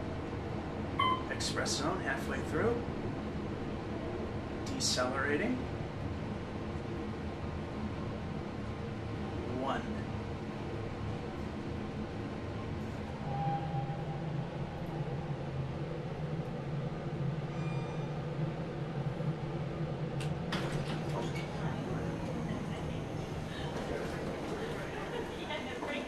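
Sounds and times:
elevator car humming: 0.0 - 26.0.

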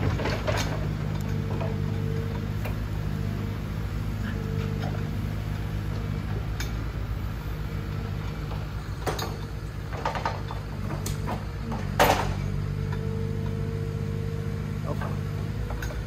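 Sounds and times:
diesel engine running: 0.0 - 16.0
logs and crane clunking: 0.0 - 16.0.

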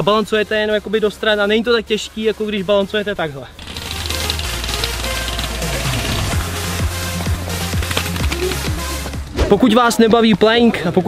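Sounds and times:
electronic dance music: 3.6 - 8.9.

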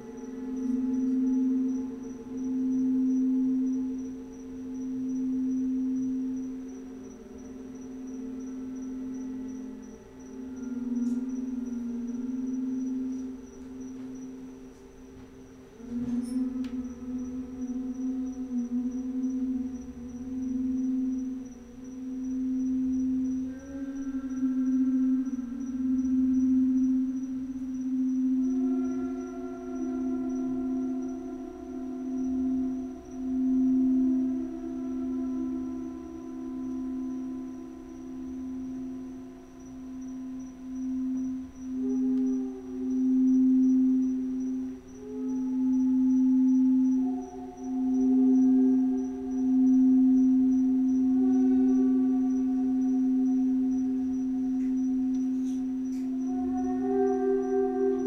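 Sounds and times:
crystal singing bowls ringing: 0.0 - 58.0.

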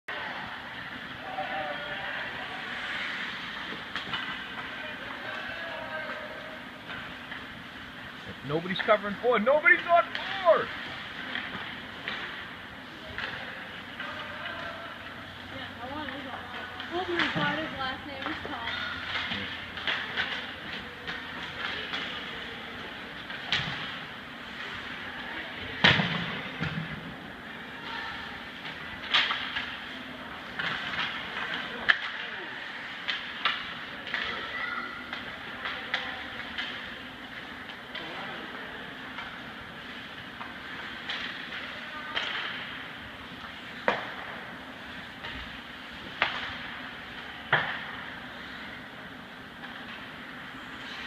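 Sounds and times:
sticks and puck clacking: 2.0 - 8.1, 8.8 - 15.2, 16.0 - 24.1, 28.6 - 48.2
skates hissing on ice: 2.4 - 3.7.

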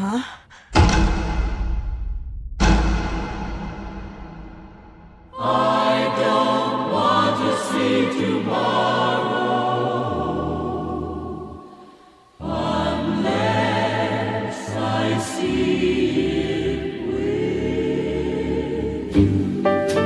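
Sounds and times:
choir singing trailer music: 0.5 - 20.0.

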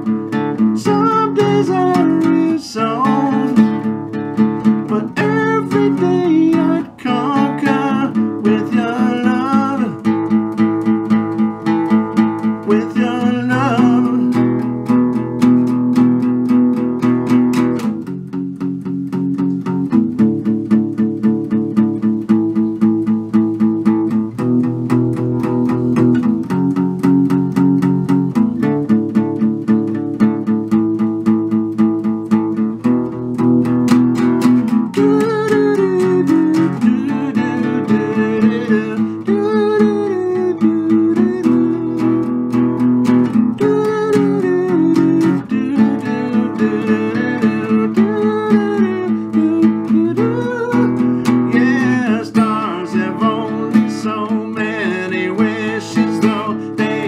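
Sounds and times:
acoustic guitar strumming: 0.0 - 57.0
man singing: 0.4 - 10.5, 12.1 - 14.8, 34.6 - 57.0.

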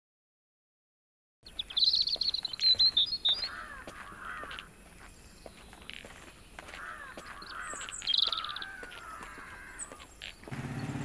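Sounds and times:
high rapid bird chirping: 1.4 - 3.9, 7.2 - 11.0
lower bird calls: 1.4 - 11.0.

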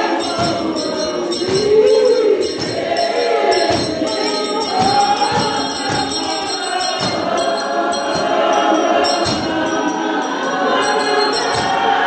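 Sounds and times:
steady percussive beat: 0.0 - 12.0
women's choir singing a hymn: 0.0 - 12.0.

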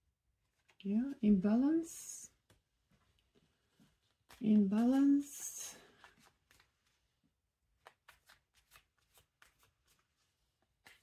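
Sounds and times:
cards being shuffled: 3.5 - 11.0.

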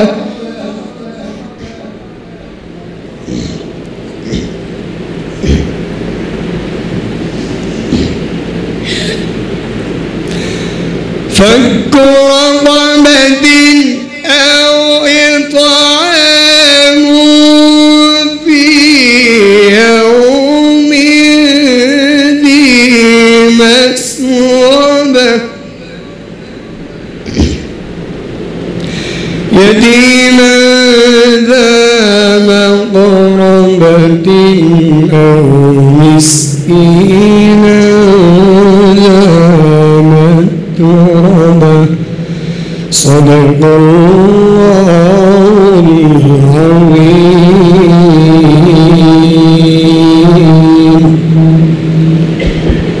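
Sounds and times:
man reciting amplified held note: 0.0 - 6.4, 11.3 - 27.8, 29.4 - 52.6
low background noise: 0.0 - 53.0
sharp intake of breath: 8.8 - 9.5, 10.2 - 11.0, 28.8 - 29.5, 42.2 - 42.9
low thump: 52.4 - 53.0.

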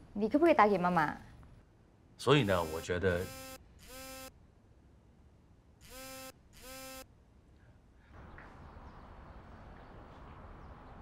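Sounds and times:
phone vibrating on wooden desk: 2.7 - 4.3, 5.8 - 7.0.

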